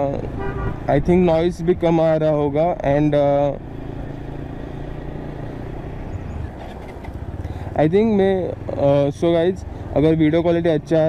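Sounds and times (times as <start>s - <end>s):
road noise: 0.0s - 11.0s
motorcycle engine running: 2.5s - 11.0s.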